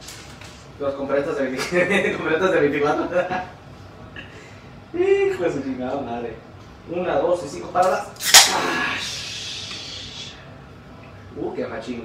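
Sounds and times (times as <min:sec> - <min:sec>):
carbonation hissing: 0:08.2 - 0:10.6.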